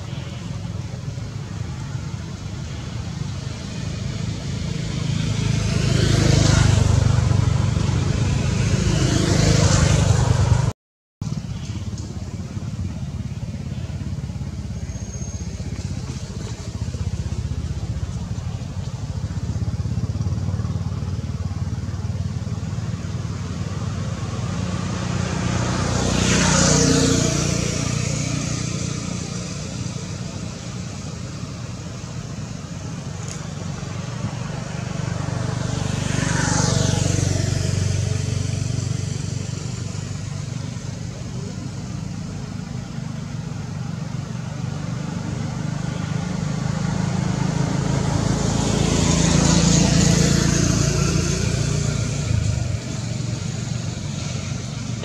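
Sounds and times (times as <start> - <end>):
road traffic rumble: 0.0 - 55.0
vehicles passing with falling whine: 0.0 - 55.0.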